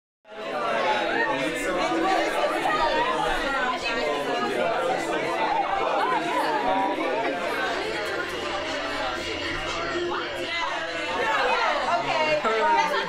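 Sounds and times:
crowd chatter: 0.3s - 13.0s.

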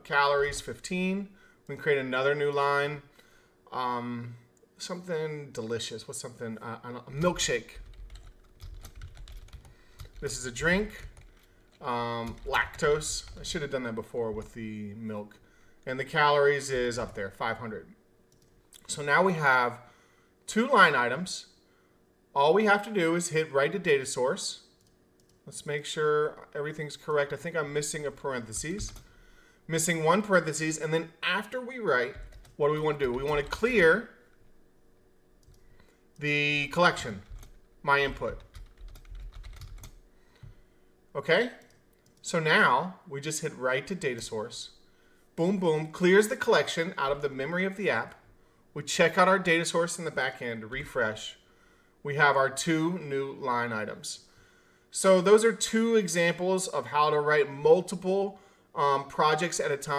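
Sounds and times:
keyboard typing: 7.2s - 13.6s, 28.5s - 29.1s, 32.1s - 33.7s, 35.4s - 35.6s, 37.0s - 40.5s.

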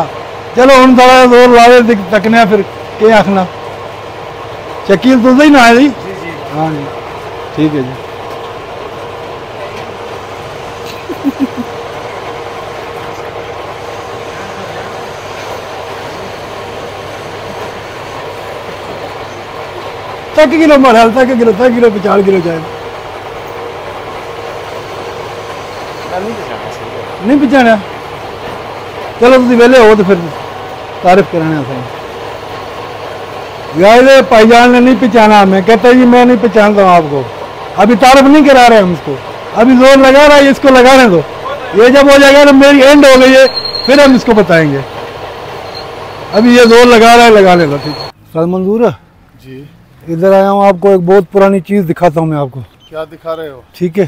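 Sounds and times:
man talking: 0.0s - 3.6s, 4.8s - 8.0s, 20.3s - 22.7s, 26.1s - 27.9s, 29.2s - 30.4s, 31.0s - 32.0s, 33.7s - 44.9s, 46.3s - 54.0s.

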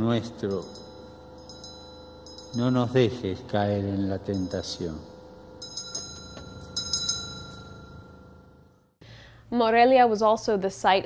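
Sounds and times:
altar bells ringing: 0.0s - 9.0s.

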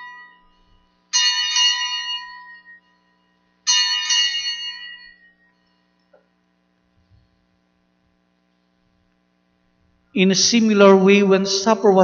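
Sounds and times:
altar bell ringing: 0.0s - 5.9s.

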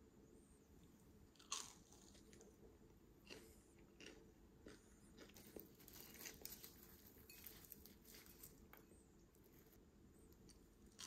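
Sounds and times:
crunchy bite into fried snack: 1.4s - 2.4s.

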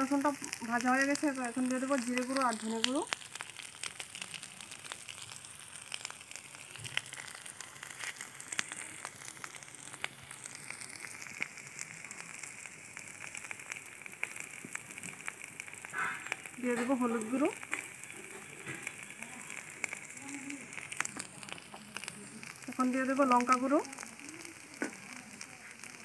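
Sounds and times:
onions frying with crackling pops: 0.0s - 26.0s.

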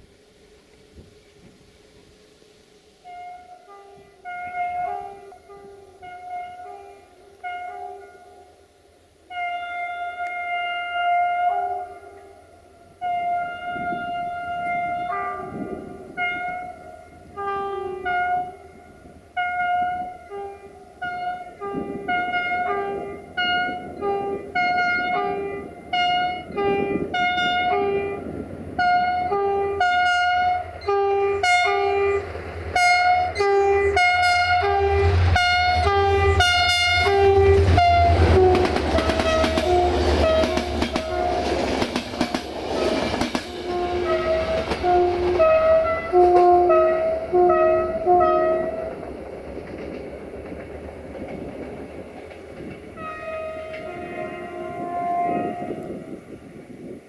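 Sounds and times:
train passing rumble: 0.0s - 57.0s
locomotive air horn toots: 3.0s - 8.6s, 9.2s - 49.1s, 52.8s - 56.9s
train wheel clatter: 34.4s - 47.3s, 47.9s - 54.1s.

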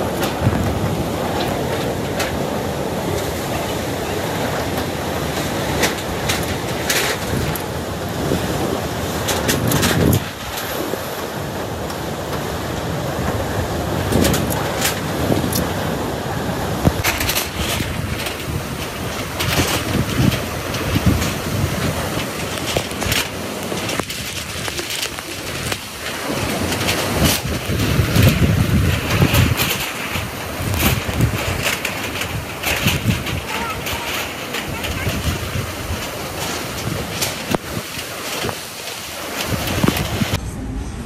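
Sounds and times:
strong wind blowing: 0.0s - 41.0s.

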